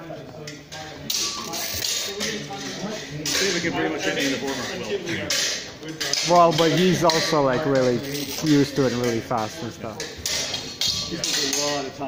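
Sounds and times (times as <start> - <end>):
man's voice: 6.3 - 10.1.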